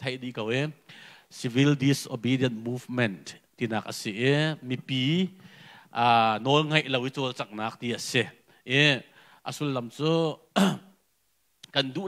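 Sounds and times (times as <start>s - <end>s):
man speaking into a microphone: 0.0s - 10.8s, 11.6s - 12.0s
man clearing throat: 10.6s - 11.0s.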